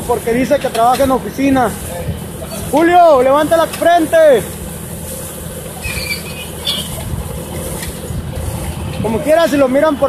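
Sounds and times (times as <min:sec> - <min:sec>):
tractor rig running: 0:00.0 - 0:10.0
high squeaks: 0:05.8 - 0:07.0.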